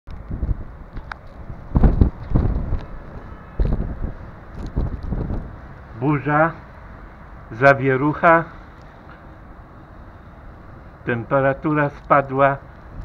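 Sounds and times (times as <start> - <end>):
wind gusting against microphone: 0.1 - 13.0.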